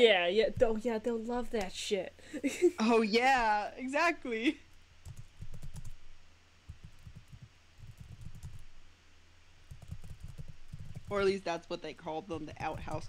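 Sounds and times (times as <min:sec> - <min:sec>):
computer keyboard typing: 0:05.0 - 0:06.0, 0:06.7 - 0:08.7, 0:09.7 - 0:11.3, 0:12.4 - 0:13.0.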